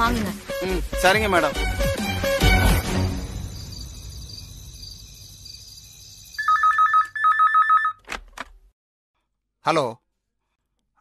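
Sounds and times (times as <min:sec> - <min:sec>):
telephone ringing with two-tone warble: 0:06.4 - 0:08.0.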